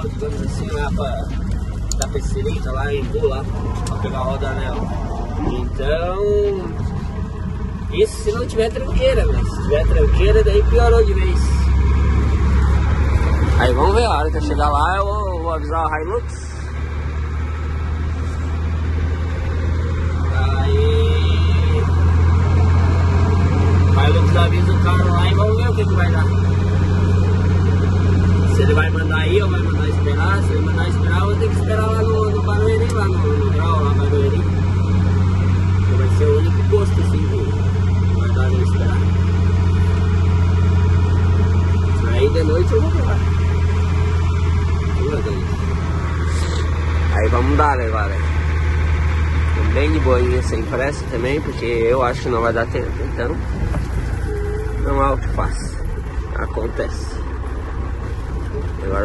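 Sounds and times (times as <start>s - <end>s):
road noise: 0.0s - 59.0s
truck engine droning: 0.0s - 59.0s.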